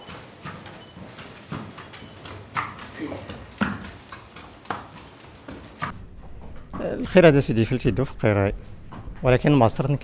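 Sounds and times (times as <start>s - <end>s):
horse hooves clip-clopping: 0.0s - 7.1s.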